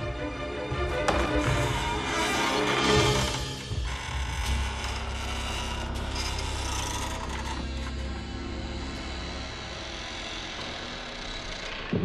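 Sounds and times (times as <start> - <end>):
low sustained drone: 4.9 - 12.0.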